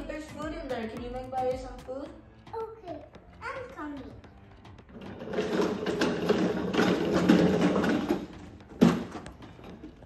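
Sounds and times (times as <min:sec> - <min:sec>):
toy cart wheels rattling on tiles: 0:04.9 - 0:10.0
toy cart thump: 0:05.0 - 0:09.8.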